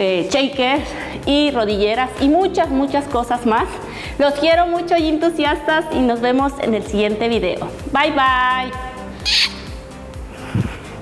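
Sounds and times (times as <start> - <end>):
background music with steady beat: 0.0 - 11.0
woman blowing a kiss: 9.2 - 9.8.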